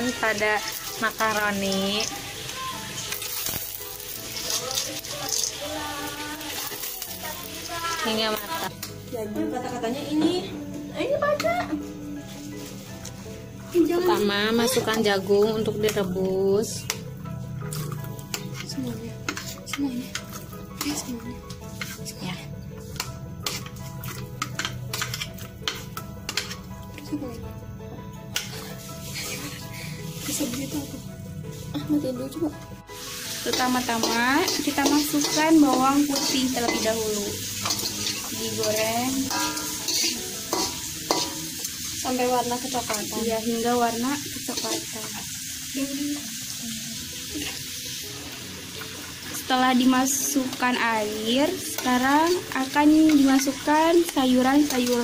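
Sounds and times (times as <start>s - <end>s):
background music: 0.0s - 55.0s
food sizzling in wok: 0.0s - 55.0s
metal utensil scraping a plate: 21.7s - 22.1s, 22.9s - 26.7s, 33.5s - 41.6s.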